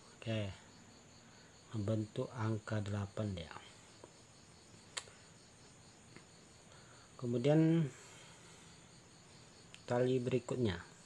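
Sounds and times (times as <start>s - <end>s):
insects chirring: 0.0s - 11.0s
sharp click: 4.9s - 5.2s.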